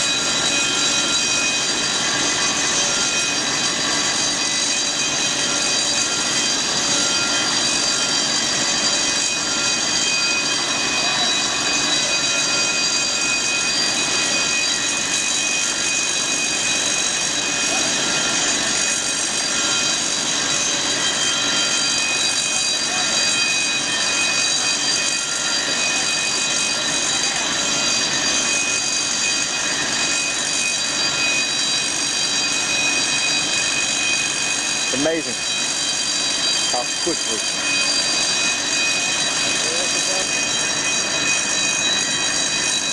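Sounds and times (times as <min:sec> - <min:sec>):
foam generators rushing air: 0:00.0 - 0:42.9
high whining fan tones: 0:00.0 - 0:42.9.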